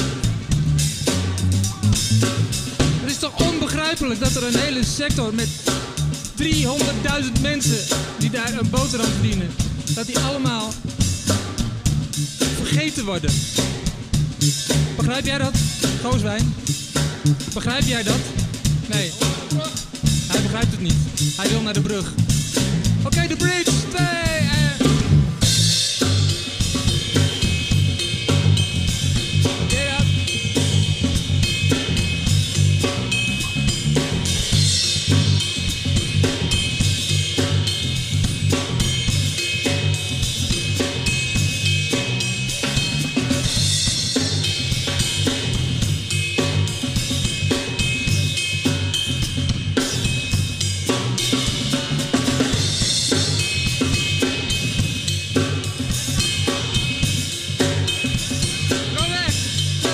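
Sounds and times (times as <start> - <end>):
bass line: 0.0 - 59.9
drum kit playing funk beat: 0.0 - 59.9.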